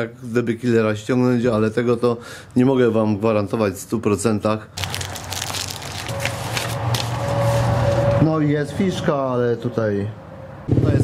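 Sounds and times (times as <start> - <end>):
paper leaflet crackling: 4.8 - 8.0.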